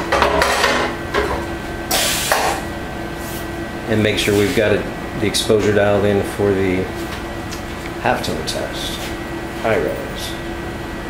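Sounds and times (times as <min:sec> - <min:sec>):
machine hum: 0:00.0 - 0:11.0.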